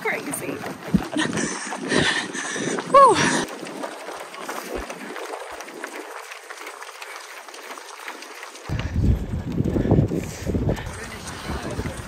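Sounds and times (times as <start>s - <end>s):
spectators clapping: 2.9s - 12.0s
wind rumbling on microphone: 8.7s - 12.0s.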